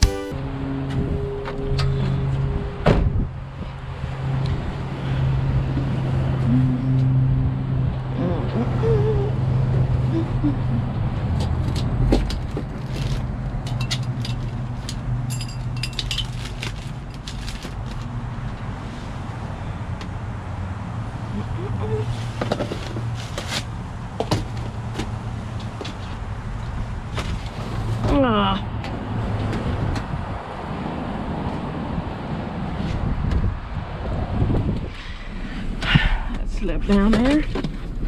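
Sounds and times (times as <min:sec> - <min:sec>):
low vehicle engine hum: 0:00.0 - 0:38.0
packaging clicking and crackling: 0:15.9 - 0:18.1.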